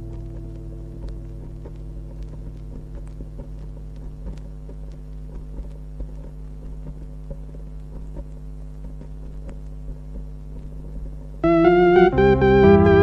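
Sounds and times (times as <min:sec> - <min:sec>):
mains hum: 0:00.0 - 0:13.0
vinyl record crackle: 0:00.0 - 0:13.0.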